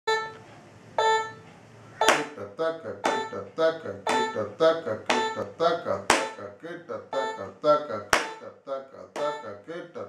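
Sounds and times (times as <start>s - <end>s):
electronic metronome beeping: 0.1s - 0.4s, 1.0s - 2.4s, 3.0s - 6.5s, 7.1s - 7.6s, 9.2s - 9.6s.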